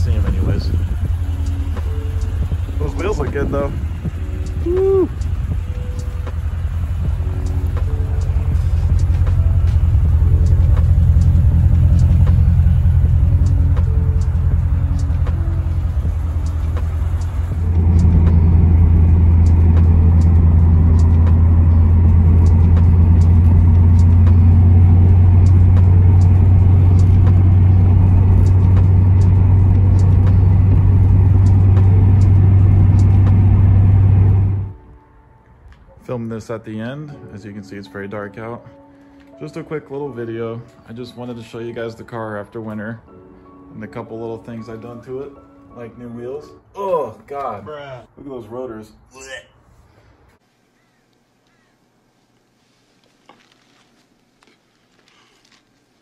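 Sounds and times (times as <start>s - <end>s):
car engine droning: 0.0s - 34.9s.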